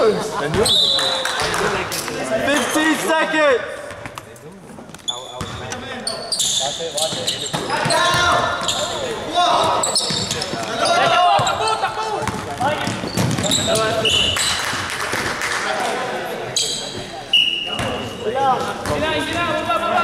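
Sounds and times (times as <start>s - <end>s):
sneakers squeaking on floor: 3.8s - 14.8s, 16.5s - 19.6s
players calling out: 5.5s - 14.8s
basketball bouncing: 12.2s - 14.0s.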